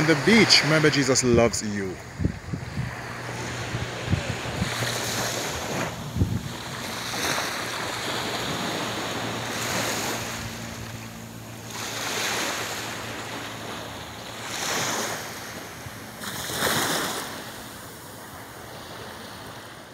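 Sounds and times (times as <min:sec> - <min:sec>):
small waves washing onto beach: 0:00.0 - 0:19.9.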